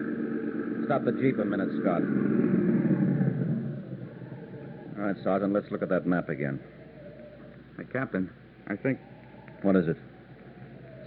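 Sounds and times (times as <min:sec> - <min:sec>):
jeep engine running: 0:00.0 - 0:11.0.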